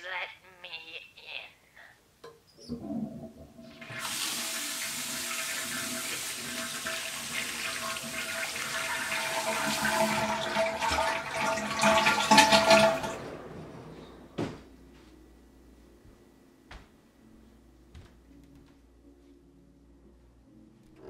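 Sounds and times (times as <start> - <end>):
water rushing through pipes: 2.7 - 14.4.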